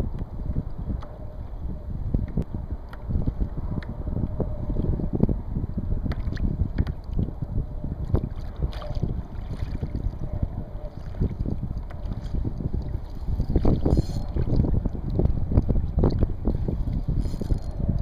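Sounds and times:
wind buffeting microphone: 0.0 - 18.0
waves lapping against kayak hull: 8.0 - 17.6.

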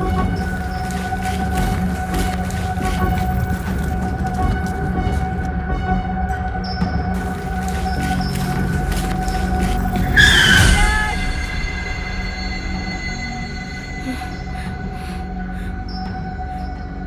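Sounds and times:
suspenseful droning film score: 0.0 - 17.0.

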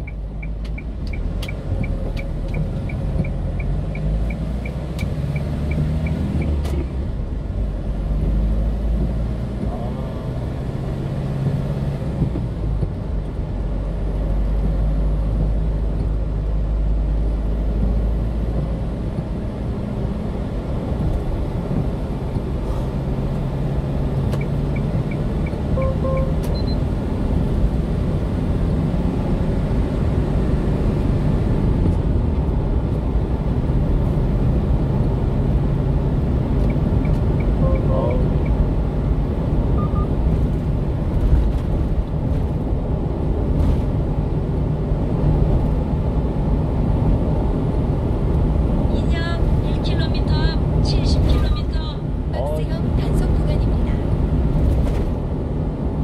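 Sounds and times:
truck engine and tyre rumble: 0.0 - 56.0
quick high beeps: 24.4 - 26.8, 39.8 - 40.1.

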